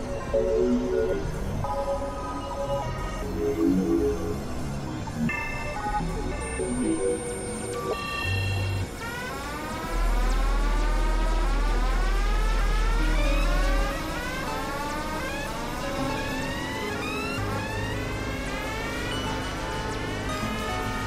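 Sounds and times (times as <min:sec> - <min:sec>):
synthesizer tones sweeping upward: 0:08.7 - 0:21.0
deep bass drone: 0:09.1 - 0:21.0.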